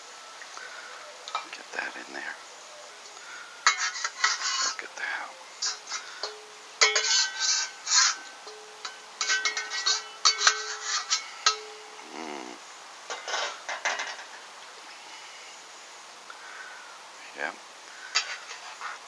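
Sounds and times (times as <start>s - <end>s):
spatula scraping metal wok: 3.3s - 4.9s, 5.5s - 14.4s, 18.0s - 19.0s.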